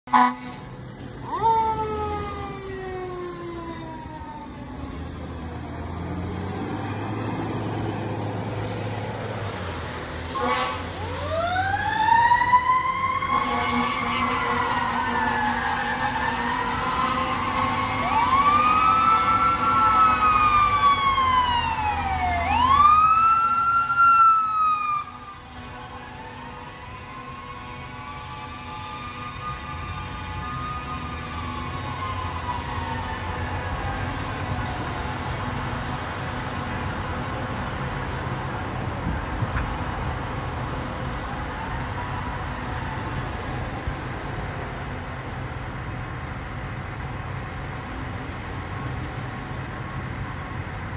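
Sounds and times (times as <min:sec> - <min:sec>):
fire engine rumble: 0:00.1 - 0:50.9
siren wailing: 0:01.2 - 0:35.3, 0:40.9 - 0:49.8.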